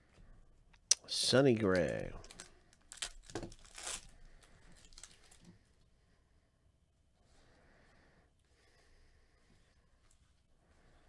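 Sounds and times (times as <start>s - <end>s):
foil wrapper tearing: 2.2s - 4.1s, 4.8s - 5.4s.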